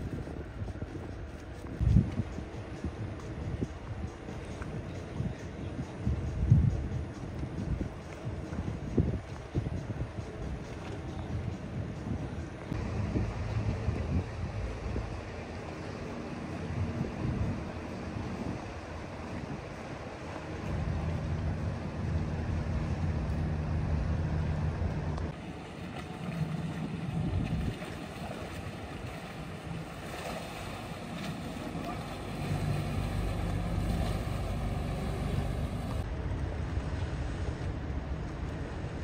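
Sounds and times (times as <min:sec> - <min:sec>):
motorboat engines droning: 0:00.0 - 0:39.0
wind on microphone: 0:00.0 - 0:39.0
water wash: 0:06.9 - 0:39.0.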